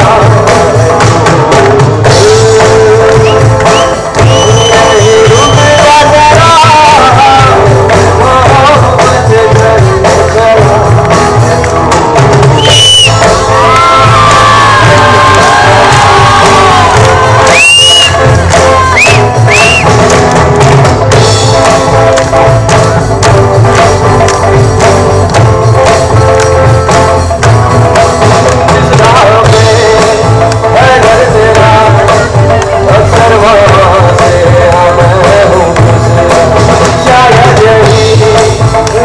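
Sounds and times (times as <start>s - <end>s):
lead vocal singing: 0.0s - 19.8s, 28.5s - 39.0s
live band playing: 0.0s - 39.0s
crowd whistling: 3.0s - 6.9s, 12.4s - 20.2s
crowd cheering: 3.0s - 7.1s, 11.5s - 34.6s
tabla: 19.3s - 39.0s.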